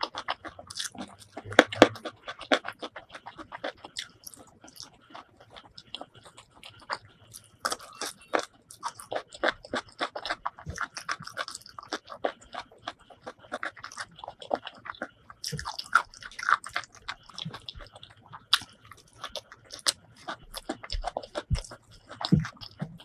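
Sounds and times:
chewing crunches: 0.0 - 23.0.

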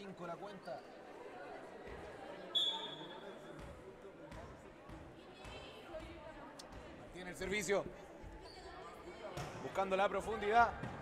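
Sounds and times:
referee's whistle: 2.6 - 3.2.

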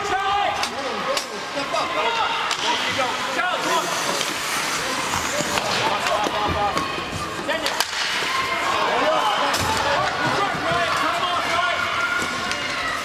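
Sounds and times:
spectators talking and calling out: 0.0 - 13.0
hockey sticks and puck clacking: 0.5 - 1.4, 2.4 - 13.0.

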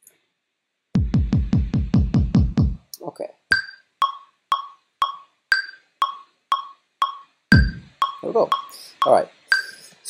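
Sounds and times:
metronome clicking: 3.5 - 9.9.

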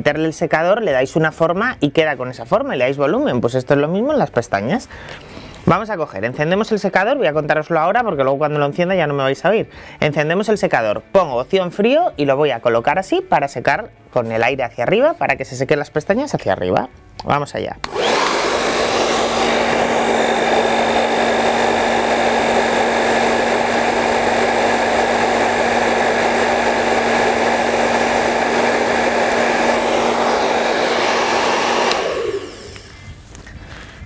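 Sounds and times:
hair dryer blowing: 17.8 - 33.1.

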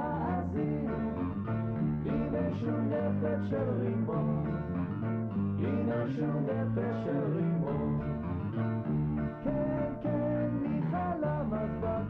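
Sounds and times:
person singing: 0.0 - 1.2, 5.6 - 8.0, 9.4 - 12.0.

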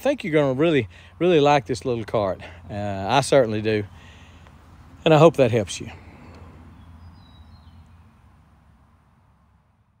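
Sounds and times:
faint bird chirps: 6.0 - 8.2.

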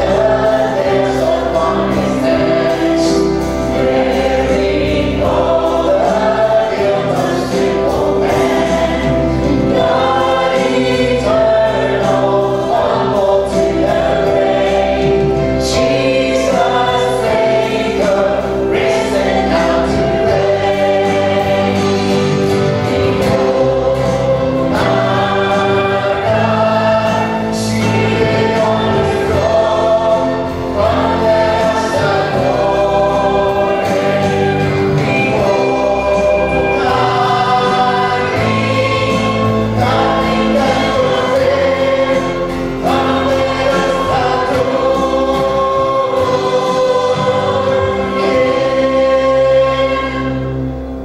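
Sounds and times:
acoustic guitar: 0.0 - 51.0.

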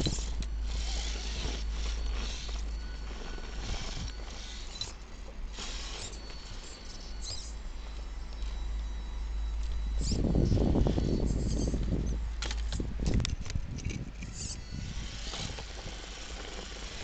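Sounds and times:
electric motor whining: 0.0 - 17.0
steady low rumble: 0.0 - 17.0.

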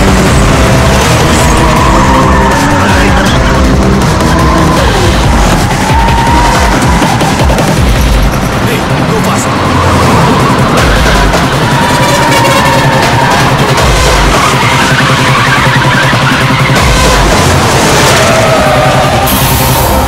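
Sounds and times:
action film music: 0.0 - 20.0
heavy truck engines running: 0.0 - 20.0
tyres skidding: 0.0 - 20.0.

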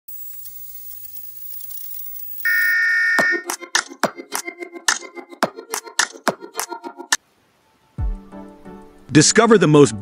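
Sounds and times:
static hiss: 0.1 - 3.2
steady test tone beep: 0.1 - 3.4
music with a beat: 3.2 - 6.8.

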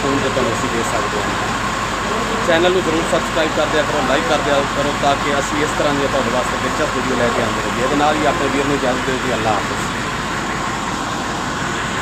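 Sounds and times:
diesel tractor engine idling: 0.0 - 12.0.

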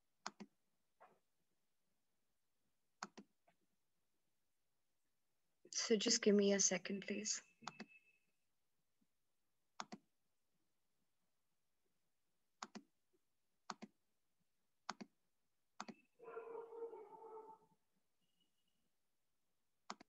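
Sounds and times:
computer mouse clicking: 0.2 - 0.5, 3.0 - 3.3, 7.6 - 8.0, 9.8 - 10.0, 12.6 - 12.9, 13.6 - 13.9, 14.9 - 15.1, 15.8 - 16.0.

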